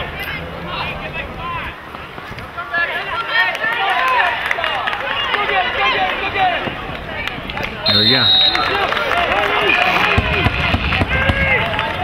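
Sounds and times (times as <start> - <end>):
voices shouting: 0.0 - 12.0
referee's whistle blast: 7.8 - 8.9.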